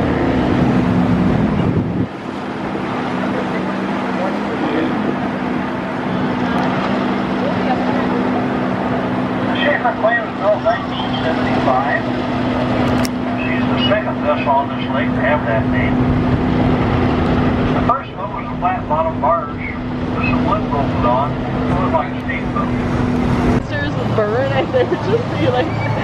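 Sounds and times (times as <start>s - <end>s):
boat engine humming: 0.0s - 26.0s
people talking: 3.1s - 5.2s, 6.2s - 8.5s, 9.5s - 12.2s, 13.3s - 16.0s, 17.8s - 22.9s, 23.6s - 26.0s.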